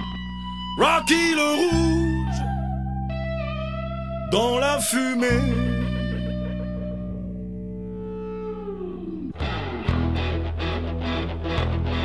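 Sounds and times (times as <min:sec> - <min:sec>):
electric guitar chord ringing: 0:00.0 - 0:12.0
rock band with distorted guitar: 0:05.5 - 0:12.0.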